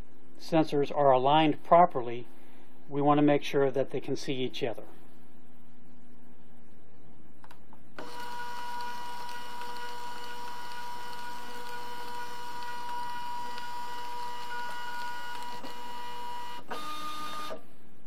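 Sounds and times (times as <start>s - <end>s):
label printer motor whine: 8.0s - 17.6s.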